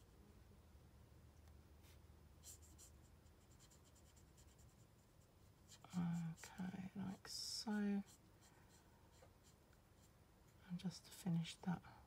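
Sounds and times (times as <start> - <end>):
low room hum: 0.0 - 12.0
marker scratching on card: 2.4 - 4.9.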